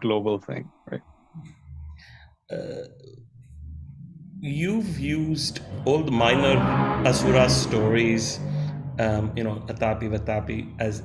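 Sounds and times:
man's throaty hesitation sound: 0:00.8 - 0:03.2.

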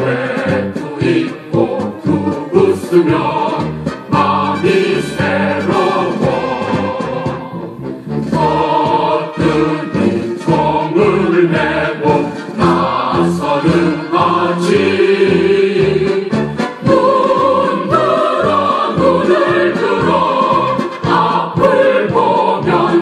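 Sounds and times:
choir singing march song: 0:00.0 - 0:23.0
instrumental accompaniment: 0:00.0 - 0:23.0.

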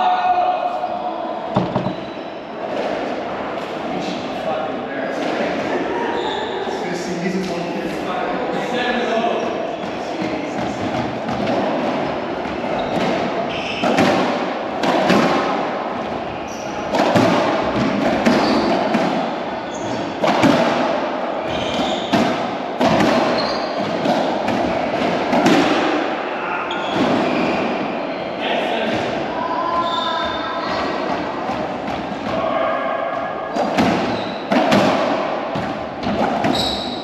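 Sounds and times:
ball banging off walls: 0:01.6 - 0:02.0
racquets hitting ball: 0:01.6 - 0:02.0, 0:09.8 - 0:16.2, 0:16.8 - 0:26.1, 0:33.5 - 0:36.8.

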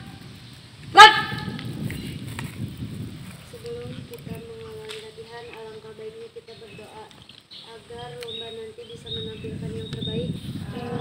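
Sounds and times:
girl shouting a command: 0:00.9 - 0:01.5.

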